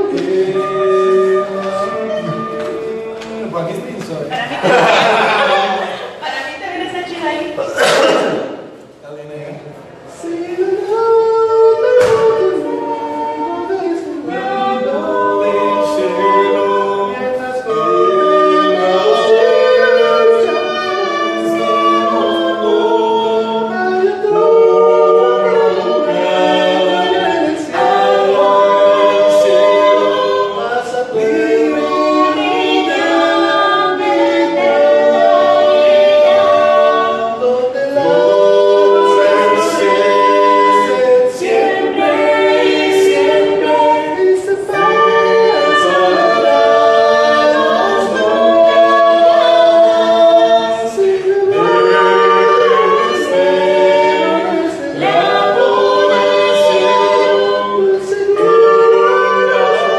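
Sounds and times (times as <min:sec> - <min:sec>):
group singing a hymn a cappella: 0:00.0 - 0:09.0, 0:09.9 - 0:59.9.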